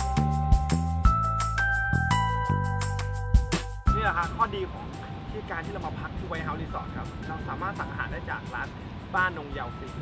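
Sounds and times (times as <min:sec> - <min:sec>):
background music: 0:00.0 - 0:10.0
man talking: 0:03.9 - 0:10.0.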